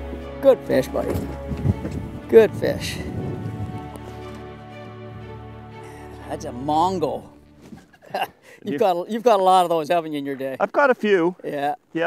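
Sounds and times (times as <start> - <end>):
background music held notes: 0.0 - 8.2.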